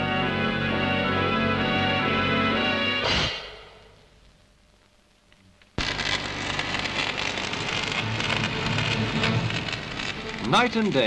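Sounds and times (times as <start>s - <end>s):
background music: 0.0s - 3.9s, 6.5s - 11.0s
electric arc welding crackle: 3.1s - 11.0s.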